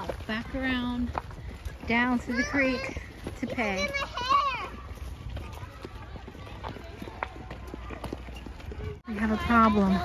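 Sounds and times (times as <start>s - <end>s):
footsteps on dirt path: 0.0s - 10.0s
wheeled cart rattling: 0.0s - 10.0s.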